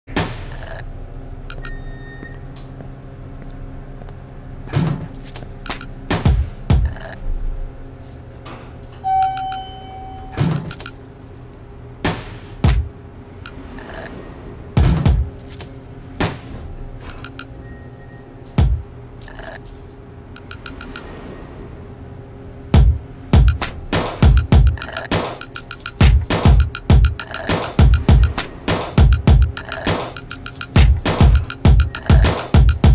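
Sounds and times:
elevator cabin hum: 0.5s - 32.9s
elevator beep: 1.5s - 2.6s, 9.0s - 10.7s, 17.2s - 18.5s, 20.4s - 21.2s, 30.4s - 32.4s
keys jangling: 19.2s - 21.2s, 24.7s - 27.5s, 29.3s - 32.2s.

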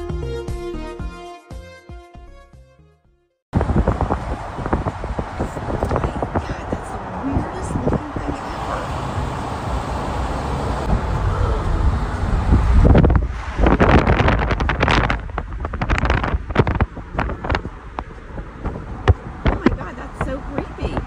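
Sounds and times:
moving vehicle rumble: 3.6s - 21.0s
wind buffeting microphone: 3.6s - 21.0s.

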